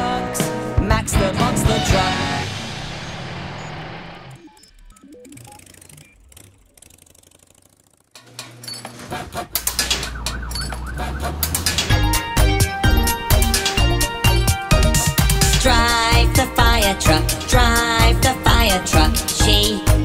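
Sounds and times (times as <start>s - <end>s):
children's song: 0.0s - 2.5s, 15.1s - 20.0s
music beat: 9.3s - 20.0s
fire engine siren effect: 9.5s - 15.0s.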